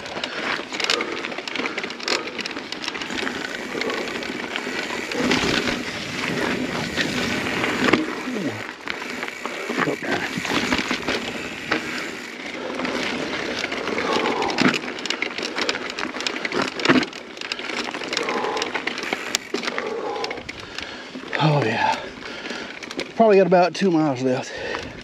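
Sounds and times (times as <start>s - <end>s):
rider breathing hard: 0.0s - 23.1s, 24.4s - 25.0s
mountain bike rattling on dirt: 0.0s - 25.0s.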